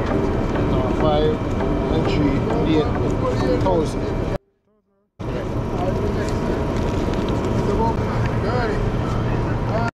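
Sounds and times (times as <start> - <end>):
faint voices: 0.0 - 4.4, 5.2 - 9.9
traffic rushing: 5.2 - 9.9.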